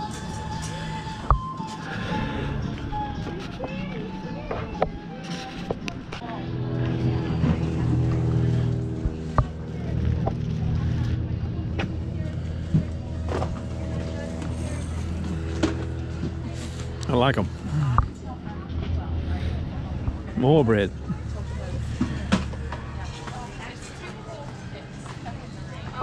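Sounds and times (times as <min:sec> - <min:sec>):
engine hum: 0:00.0 - 0:26.0
murmur of voices: 0:00.0 - 0:26.0.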